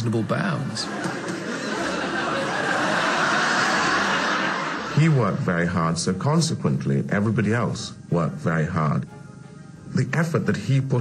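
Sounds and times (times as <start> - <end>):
audience laughing and clapping: 0.0 - 5.5.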